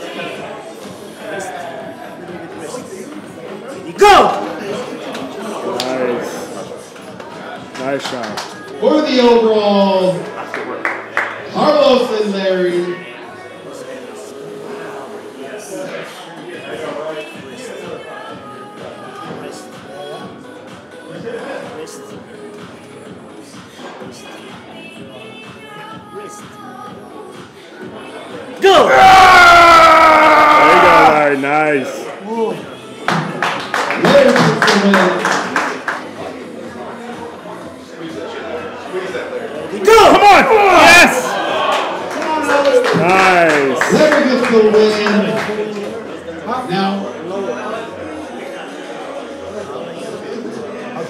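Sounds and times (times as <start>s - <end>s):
background music: 0.0s - 51.0s.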